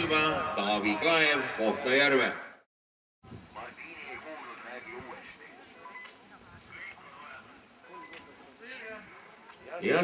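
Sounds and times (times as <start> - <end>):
background chatter of spectators: 3.4 - 10.0.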